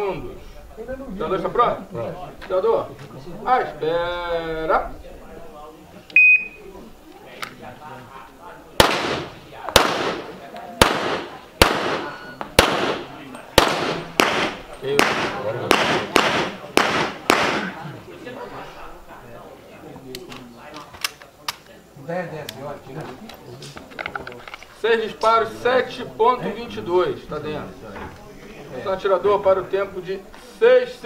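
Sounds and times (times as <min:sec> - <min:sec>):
pistol shots: 0:08.8 - 0:17.8.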